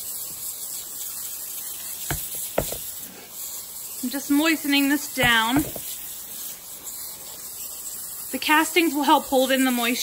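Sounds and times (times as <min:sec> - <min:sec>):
pump sprayer hissing: 0:00.0 - 0:10.0
light knocks: 0:02.1 - 0:02.9.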